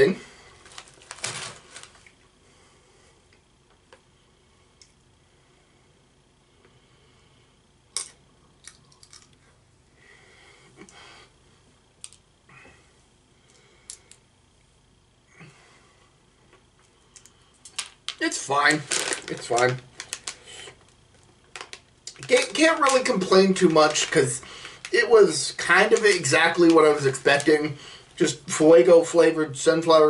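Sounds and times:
plastic bag rustling: 0:00.6 - 0:02.2, 0:17.8 - 0:28.3
seed shells cracking: 0:08.0 - 0:09.4, 0:17.2 - 0:25.0.

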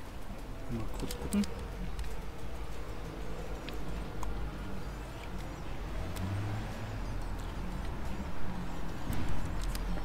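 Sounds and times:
city background rumble: 0:00.0 - 0:10.0.

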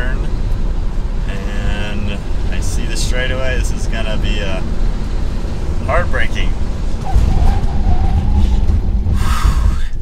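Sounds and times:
road and tyre rumble: 0:00.0 - 0:10.0.

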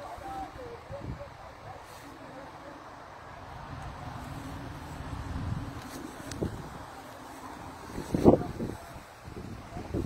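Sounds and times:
wind rumbling on microphone: 0:03.3 - 0:10.0.

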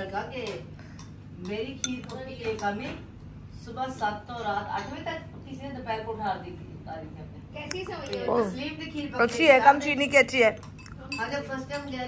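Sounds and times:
metal spoon clinking against bowl: 0:01.7 - 0:02.8, 0:10.6 - 0:12.0.

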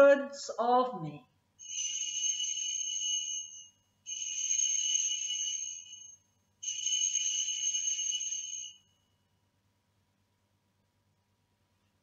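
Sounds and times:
altar bells ringing: 0:01.6 - 0:08.8.

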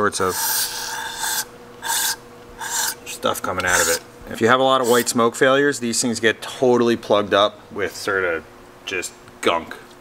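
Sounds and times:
aerosol spray hissing bursts: 0:00.4 - 0:03.0.

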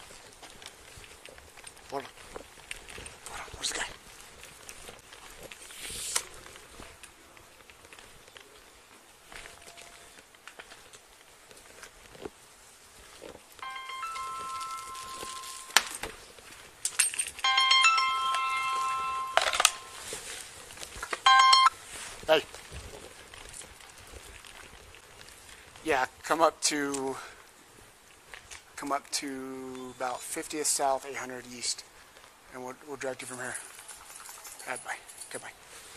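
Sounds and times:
mobile phone ringtone: 0:13.6 - 0:16.0, 0:17.4 - 0:20.2, 0:21.3 - 0:21.8.

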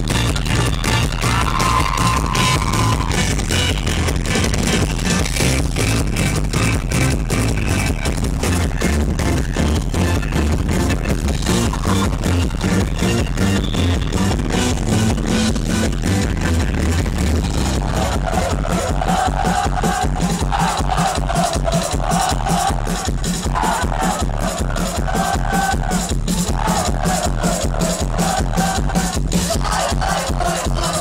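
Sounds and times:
live band electronic rock: 0:00.0 - 0:31.0.

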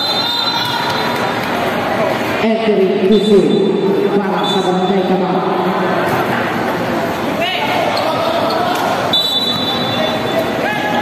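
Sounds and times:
referee whistle blast: 0:00.0 - 0:01.1, 0:04.4 - 0:04.9, 0:09.1 - 0:10.4
crowd chatter: 0:00.0 - 0:11.0.

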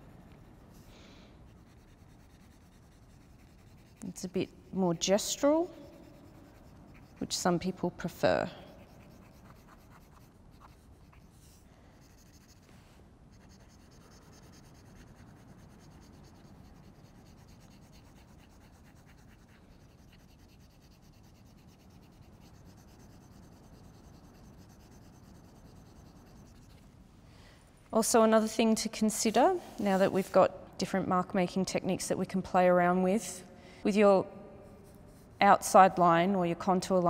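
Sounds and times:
pencil scratching on paper: 0:01.5 - 0:04.3, 0:05.1 - 0:26.8.

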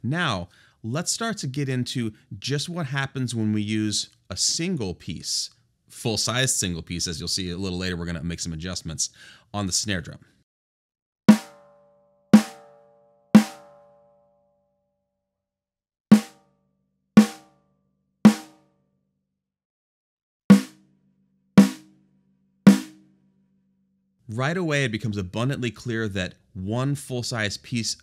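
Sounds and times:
muffled snare drum hits: 0:11.3 - 0:11.6, 0:13.4 - 0:13.7, 0:16.1 - 0:16.4, 0:17.2 - 0:17.5, 0:18.3 - 0:18.6, 0:20.5 - 0:20.8, 0:21.6 - 0:21.9, 0:22.7 - 0:23.0.

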